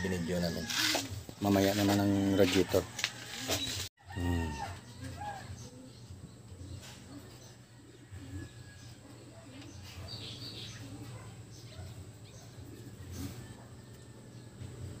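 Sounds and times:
bird cooing faintly: 3.4s - 14.2s.

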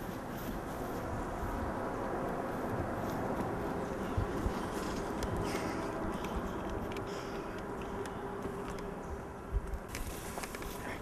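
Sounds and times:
footsteps and scuffling on grass: 0.0s - 7.4s, 9.8s - 11.0s
low outdoor background noise: 0.0s - 11.0s.

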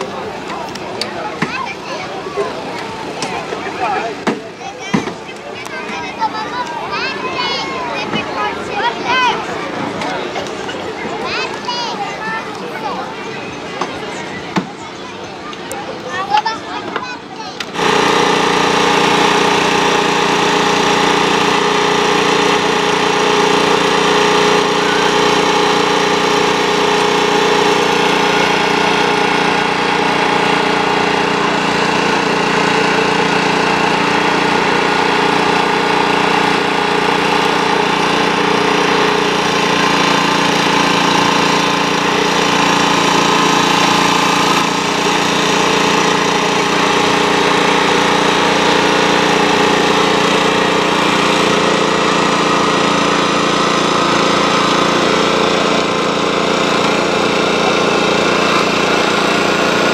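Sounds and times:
small petrol engine running: 0.0s - 59.9s.

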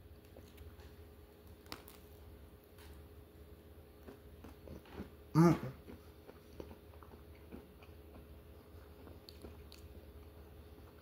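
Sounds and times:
person humming mm-hmm: 5.4s - 5.8s
chewing mouth clicks: 5.8s - 10.0s.

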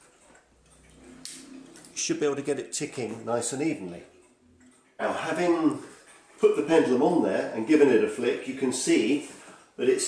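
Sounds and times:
clock ticking faintly: 0.0s - 7.0s.

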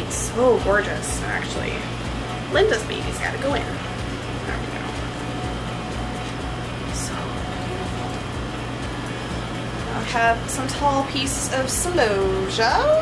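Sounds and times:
faint steady whine: 0.0s - 13.0s
low hum of cooling units: 0.0s - 13.0s.

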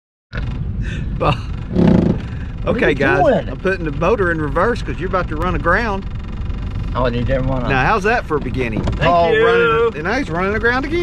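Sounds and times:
outboard motor running: 0.4s - 11.0s
men laughing: 0.9s - 1.7s.

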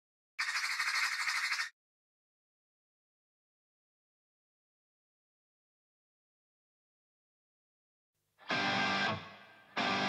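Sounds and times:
harsh high-pitched fluttering noise: 0.4s - 1.7s.

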